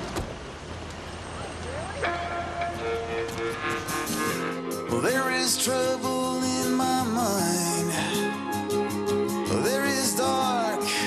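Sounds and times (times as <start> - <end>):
street traffic rumble: 0.0 - 11.0
theme music with held notes: 2.0 - 5.5.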